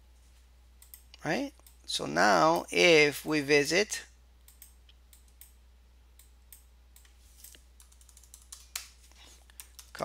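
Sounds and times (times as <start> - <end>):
typing on computer keyboard: 7.4 - 10.0.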